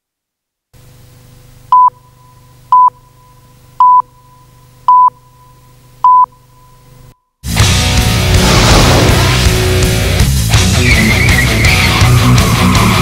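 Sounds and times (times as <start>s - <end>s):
short electronic beeps: 1.8s - 6.8s.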